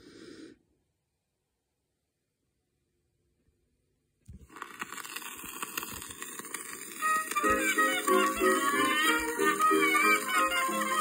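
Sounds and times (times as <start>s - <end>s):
record hiss and crackle: 4.2s - 11.0s
instrumental song introduction: 7.0s - 11.0s.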